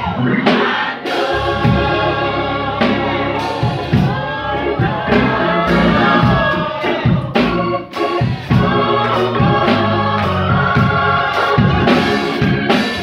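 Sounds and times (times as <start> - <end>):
gospel singing: 0.0 - 13.0
live band with bass and drums: 0.0 - 13.0.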